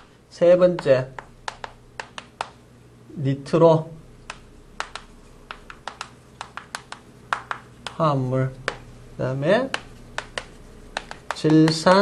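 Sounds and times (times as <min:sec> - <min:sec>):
chalk tapping on blackboard: 0:00.7 - 0:02.6, 0:04.2 - 0:08.9, 0:09.5 - 0:12.0.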